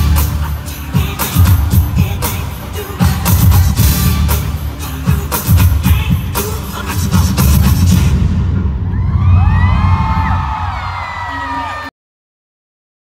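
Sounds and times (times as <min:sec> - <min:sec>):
low rumble: 0:07.8 - 0:10.7
crowd cheering and whooping: 0:08.8 - 0:11.9.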